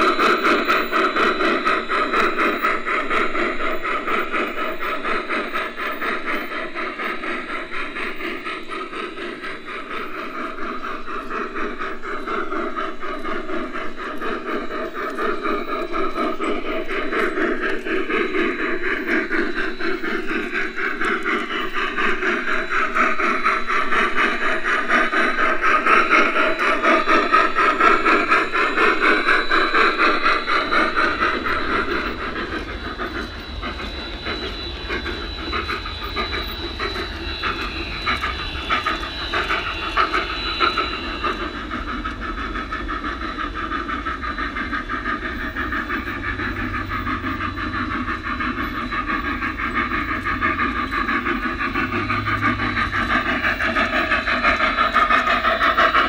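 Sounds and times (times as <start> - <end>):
steam hissing: 0.0 - 56.0
steam locomotive chuffing: 0.0 - 56.0
wheels rolling on rails: 0.0 - 56.0.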